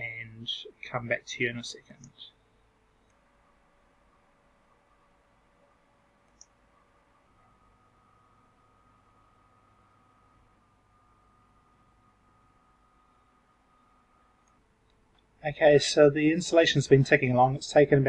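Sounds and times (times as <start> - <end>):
thin steady hum: 0.0 - 18.0
faint click: 6.2 - 6.6.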